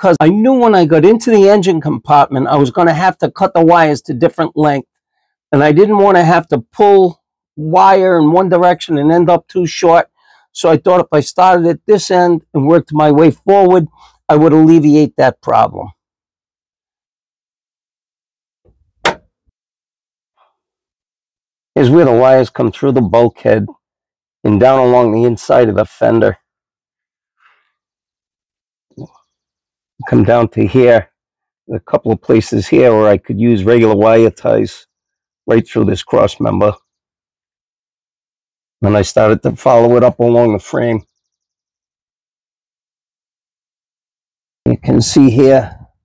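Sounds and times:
socket cover snapping shut: 19.0 - 19.2.

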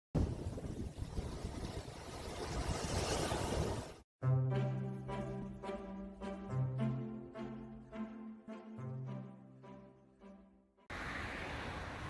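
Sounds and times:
wind buffeting microphone: 0.2 - 3.9
surf washing up a beach: 10.9 - 12.0.

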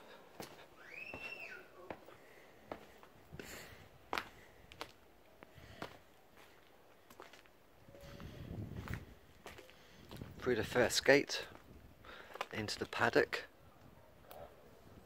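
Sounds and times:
footsteps on concrete: 0.3 - 7.5, 8.8 - 10.4, 11.4 - 12.6.

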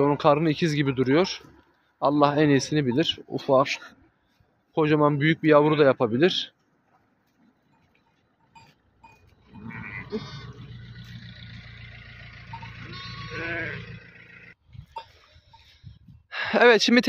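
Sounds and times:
low steady rumble: 7.6 - 14.6
sheep bleating: 9.4 - 10.8, 12.5 - 14.4.

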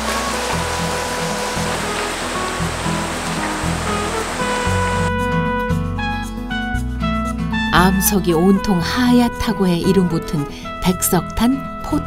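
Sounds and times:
stream running over rocks: 0.0 - 5.1
background music: 0.0 - 12.0.

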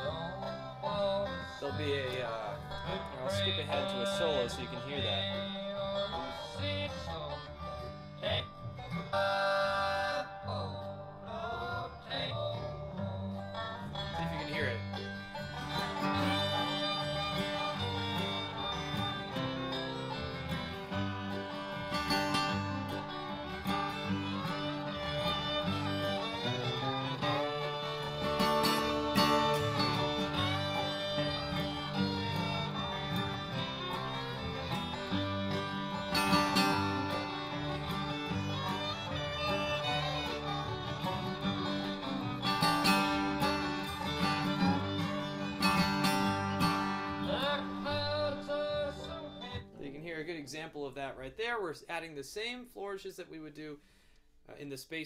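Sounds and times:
acoustic guitar strumming: 0.0 - 50.9
recorded bluegrass band: 0.0 - 54.0.

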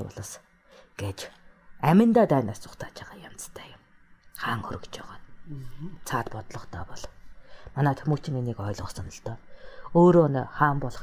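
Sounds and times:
soft hissy breaths: 0.0 - 10.3
person whispering: 2.6 - 3.8, 4.4 - 7.2
person talking: 4.3 - 11.0.

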